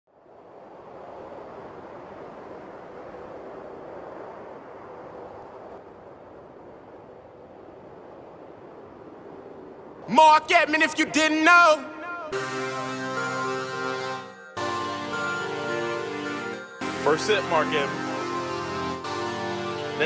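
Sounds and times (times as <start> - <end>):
outdoor ambient rush: 0.1 - 20.0.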